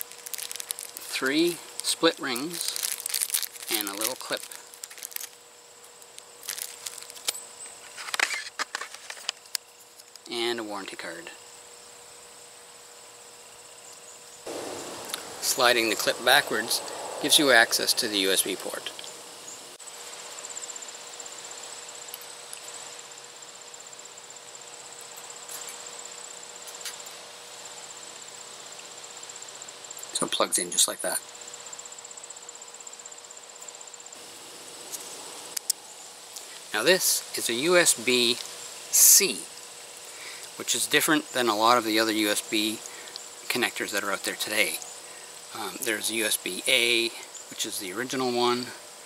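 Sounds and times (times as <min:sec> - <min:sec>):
plastic bag crinkling: 0:00.0 - 0:05.4, 0:06.1 - 0:07.4
insect trill: 0:00.0 - 0:49.0.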